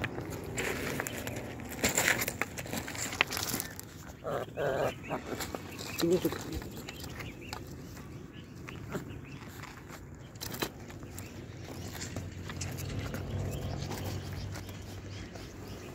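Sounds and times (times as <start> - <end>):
pebbles shifting: 0.0 - 8.1, 8.7 - 15.9.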